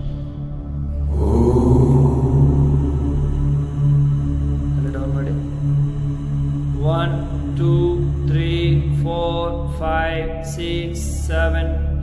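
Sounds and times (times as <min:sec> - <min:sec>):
steady low drone: 0:00.0 - 0:12.0
voice chanting: 0:00.9 - 0:11.8.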